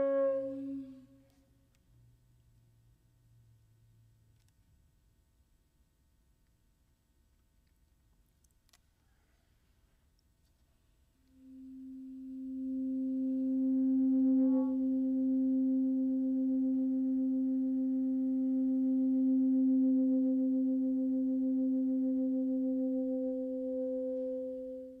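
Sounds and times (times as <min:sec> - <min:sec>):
soprano saxophone long low note: 0:00.0 - 0:01.3, 0:11.4 - 0:25.0.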